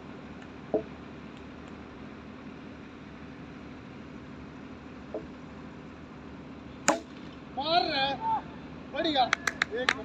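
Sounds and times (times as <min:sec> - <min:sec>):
cricket bat striking ball: 0:06.9 - 0:07.2
man shouting: 0:07.6 - 0:08.6.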